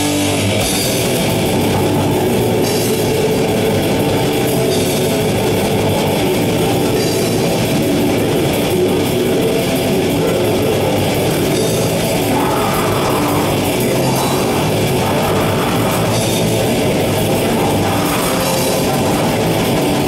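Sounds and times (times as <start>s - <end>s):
metal band playing live: 0.0s - 20.0s.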